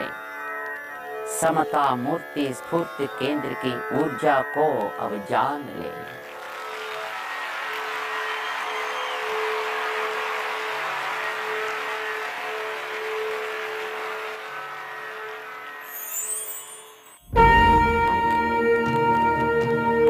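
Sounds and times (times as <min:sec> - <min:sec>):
steady drone note: 0:16.6 - 0:20.0.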